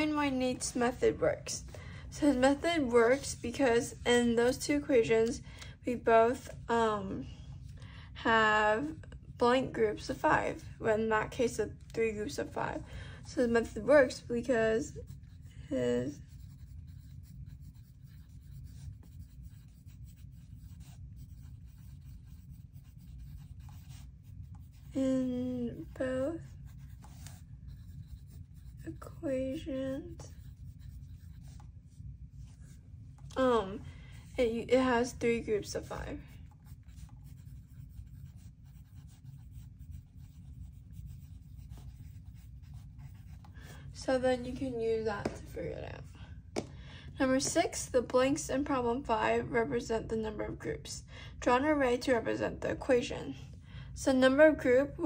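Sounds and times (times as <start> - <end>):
low steady background hum: 0.0 - 55.0
pencil scratching on paper: 13.4 - 32.8, 33.4 - 45.6.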